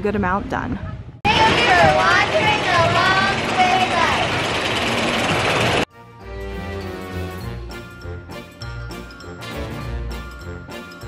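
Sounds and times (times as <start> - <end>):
wind and ride noise: 0.0 - 5.9.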